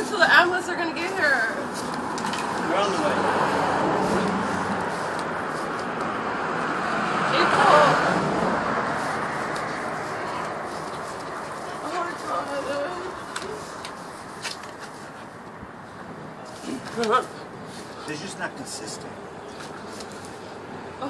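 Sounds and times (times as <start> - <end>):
vehicle passing: 0.0 - 21.0.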